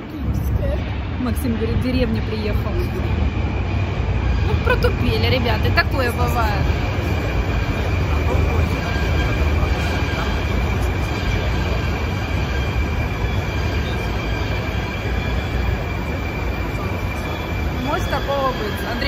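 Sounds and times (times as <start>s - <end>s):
high whine: 0.0s - 19.0s
metro train low rumble: 0.0s - 19.0s.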